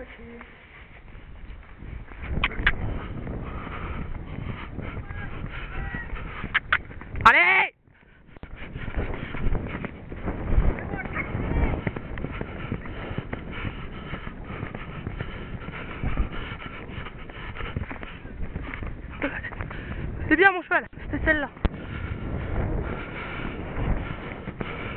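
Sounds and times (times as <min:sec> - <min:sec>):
horse hoofbeats galloping on dirt: 0:00.0 - 0:24.9
wind noise: 0:00.0 - 0:24.9.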